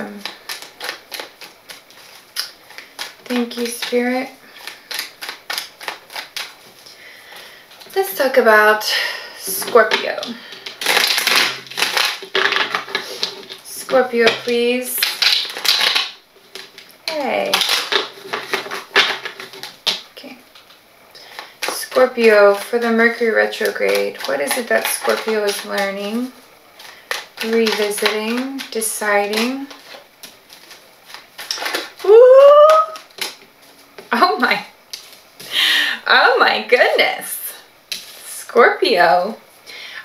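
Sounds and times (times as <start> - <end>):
cards being shuffled: 0.0 - 8.3, 9.4 - 35.5.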